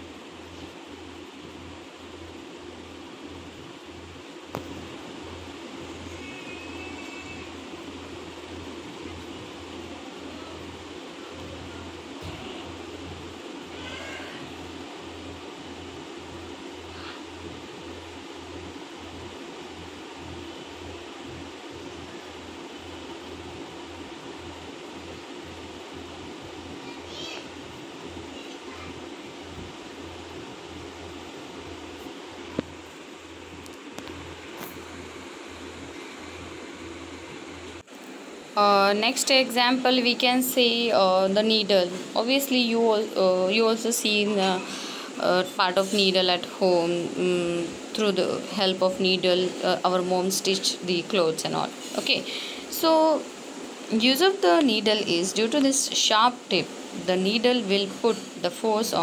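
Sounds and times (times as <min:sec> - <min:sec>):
low background hum: 0:00.0 - 0:59.0
faint wavering high-pitched calls: 0:06.0 - 0:07.7.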